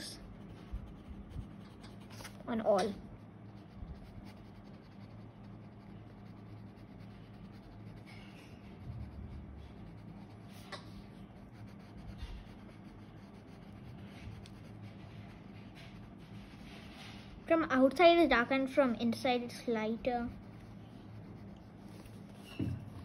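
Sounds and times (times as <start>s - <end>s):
pencil scratching on paper: 0.0s - 17.9s, 19.4s - 23.0s.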